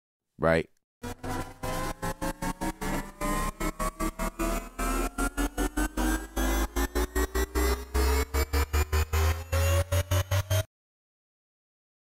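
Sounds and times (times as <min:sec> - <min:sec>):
stuttering electronic riser: 0:01.0 - 0:10.7.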